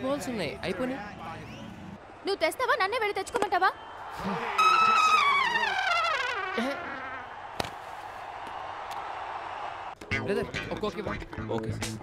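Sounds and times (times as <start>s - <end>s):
descending whistle-like tone: 4.6s - 6.4s.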